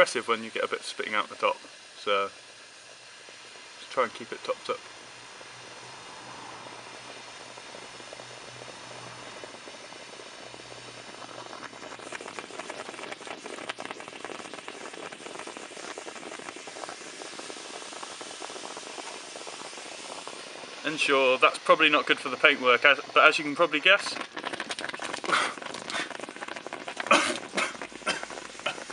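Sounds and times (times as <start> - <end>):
chemical solution fizzing and popping: 0.0 - 28.9.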